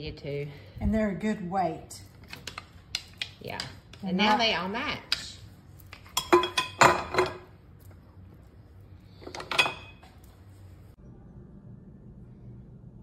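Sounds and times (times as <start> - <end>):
utensils clinking in ceramic crock: 2.2 - 7.5, 9.2 - 10.2.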